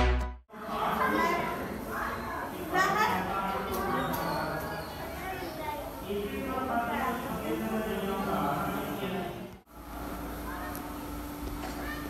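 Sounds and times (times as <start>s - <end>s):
steady hum: 5.0s - 12.0s.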